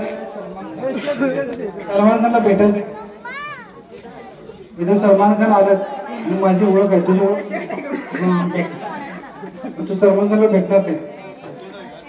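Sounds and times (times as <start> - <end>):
low crowd chatter: 0.0 - 12.0.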